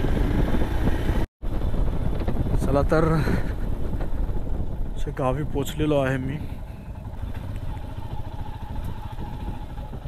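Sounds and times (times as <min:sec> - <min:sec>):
motorcycle engine rumbling: 0:00.0 - 0:10.0
road and wind noise: 0:00.0 - 0:10.0.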